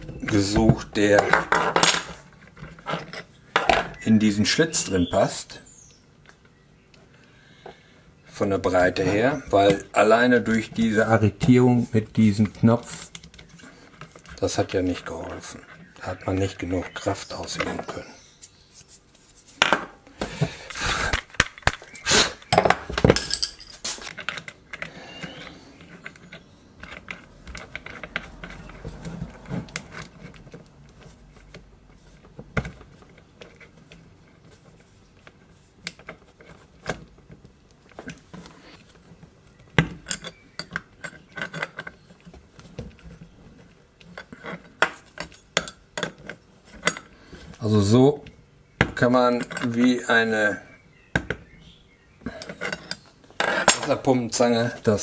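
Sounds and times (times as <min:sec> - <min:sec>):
spanners clinking on metal nut: 0:01.1 - 0:03.9, 0:22.5 - 0:28.8, 0:40.0 - 0:42.0, 0:44.2 - 0:47.1, 0:52.3 - 0:54.2.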